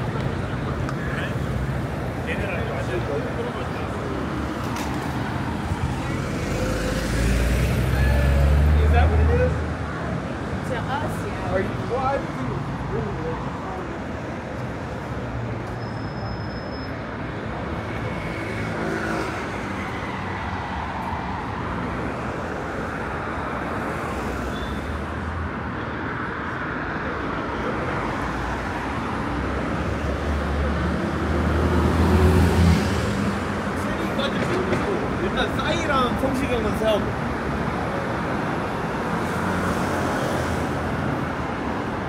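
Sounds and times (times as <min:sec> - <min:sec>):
cars passing on busy street: 0:00.0 - 0:42.0.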